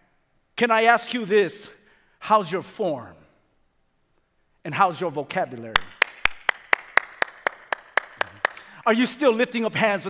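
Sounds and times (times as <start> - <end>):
person clapping hands: 5.8 - 8.8.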